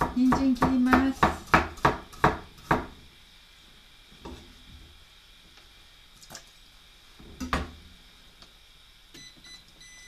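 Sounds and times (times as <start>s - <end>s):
knife chopping on cutting board: 0.0s - 3.0s.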